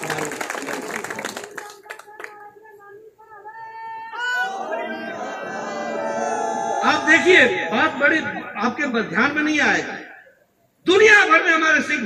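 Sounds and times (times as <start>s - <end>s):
crowd clapping: 0.0s - 2.4s.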